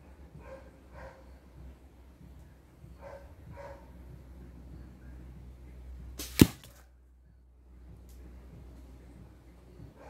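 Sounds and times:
arrow striking bottle cap: 6.2 - 6.8.

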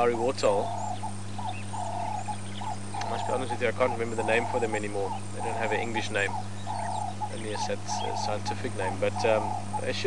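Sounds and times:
birds calling with low notes: 0.0 - 10.0
steady low hum: 0.0 - 10.0.

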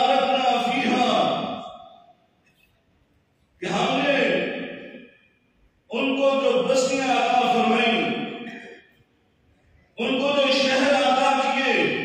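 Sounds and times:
man preaching into a microphone: 0.0 - 2.1, 3.6 - 5.2, 5.9 - 9.0, 9.9 - 12.0.

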